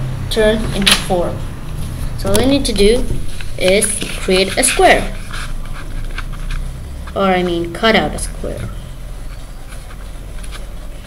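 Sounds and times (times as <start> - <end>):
paper rustling being folded: 9.2 - 11.0.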